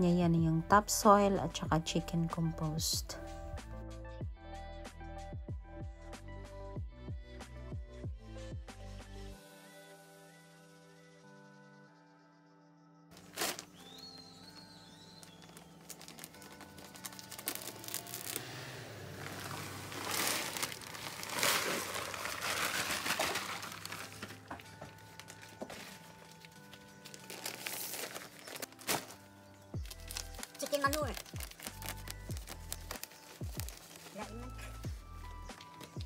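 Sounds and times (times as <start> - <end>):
background music: 0.0 - 36.0
knife slitting plastic bag: 13.2 - 14.0, 15.3 - 29.2
plastic bags crinkling: 13.2 - 34.8.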